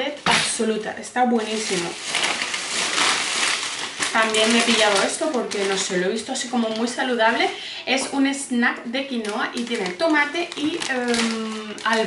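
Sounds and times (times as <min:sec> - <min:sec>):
plastic bag rustling: 0:00.0 - 0:08.3, 0:09.1 - 0:12.0.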